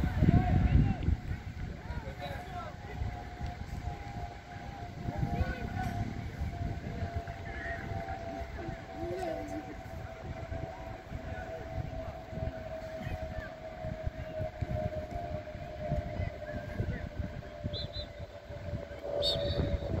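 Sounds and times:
steady mid-pitched hum: 0.0 - 20.0
wind rumbling on microphone: 0.0 - 20.0
high whistle-like sound: 17.6 - 20.0.

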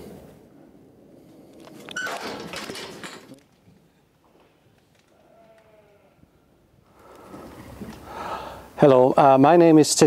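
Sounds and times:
sheep bleating: 5.2 - 6.2.

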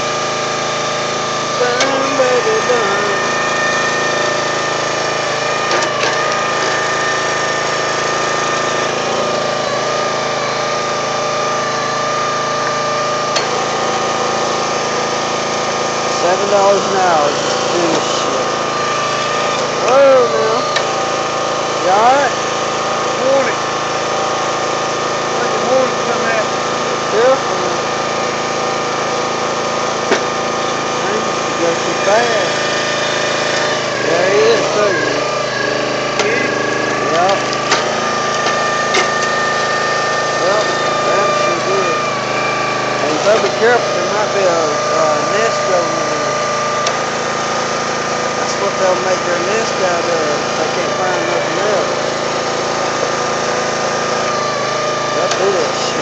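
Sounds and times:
small petrol engine running: 0.0 - 56.0.

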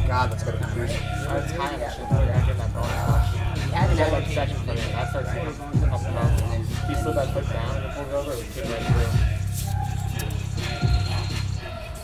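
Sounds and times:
background music with deep bass: 0.0 - 12.0.

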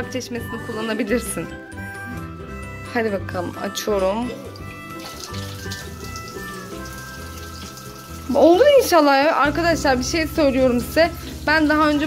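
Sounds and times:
background music: 0.0 - 12.0
water splashing onto dishes: 4.4 - 9.2, 10.7 - 12.0
tap running into a sink: 4.5 - 8.3.

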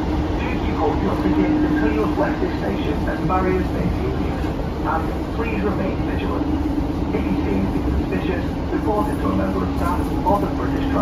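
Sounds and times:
diesel engine drone: 0.0 - 11.0
passengers talking indistinctly: 0.0 - 11.0
wheels rumbling on rail: 0.0 - 11.0.

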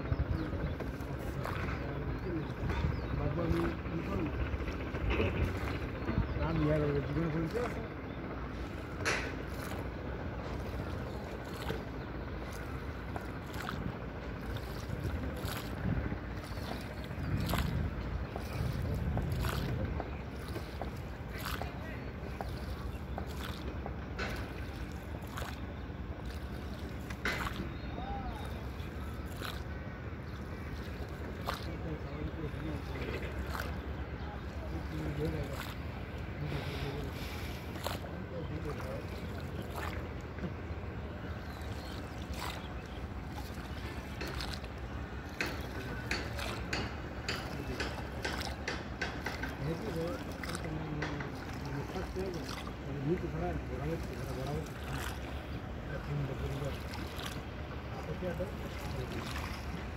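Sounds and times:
short water splashes: 0.0 - 59.9
water sloshing against boat hull: 0.0 - 59.9
wind rumble on microphone: 0.0 - 59.9.

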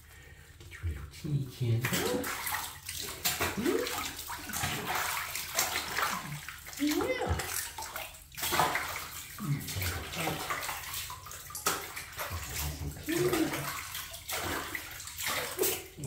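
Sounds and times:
bathwater sloshing and splashing: 0.0 - 16.0
wet cloth scrubbing: 1.6 - 16.0.

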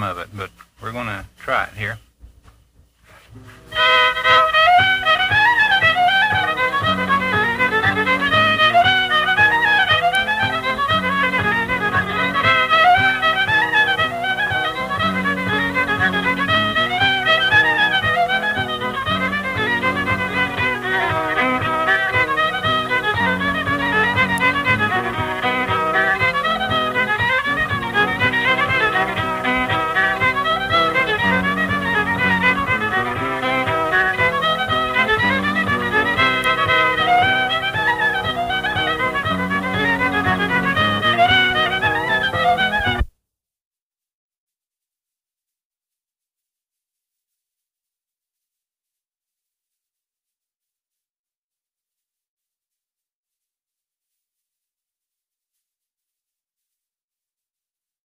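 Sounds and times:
old-time fiddle tune: 0.0 - 2.2, 2.9 - 43.1.

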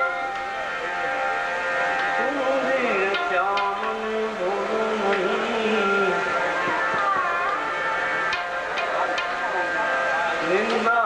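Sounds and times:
harmonium held notes: 0.0 - 11.0.

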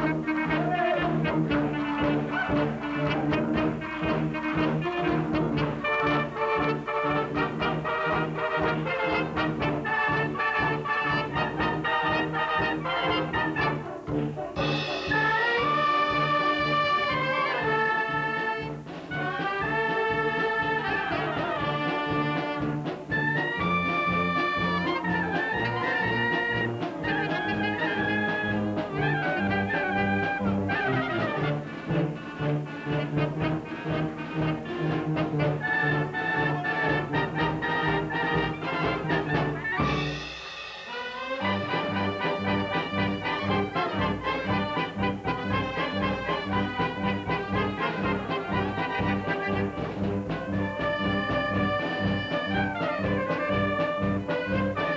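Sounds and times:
brass band playing: 0.0 - 54.9
drums beating: 0.0 - 54.9.

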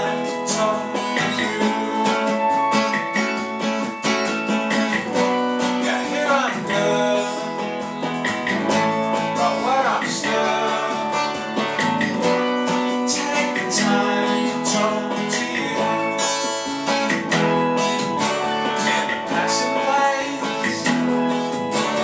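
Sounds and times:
person singing sliding notes: 0.0 - 3.4, 12.7 - 17.2
acoustic guitar strumming: 0.0 - 22.0.

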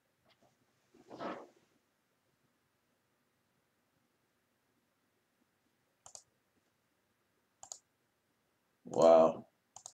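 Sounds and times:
sharp double clicks: 6.0 - 6.3, 7.6 - 7.9
person's voice: 8.9 - 9.4.

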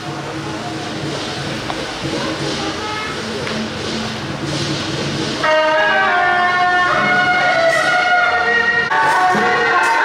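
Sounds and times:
street noise: 0.0 - 10.0
wind instrument holding notes: 5.4 - 10.0.

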